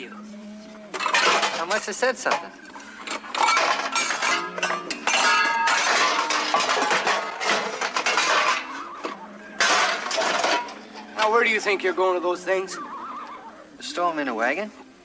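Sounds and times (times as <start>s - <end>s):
metal pots and pans clattering: 0.9s - 11.8s.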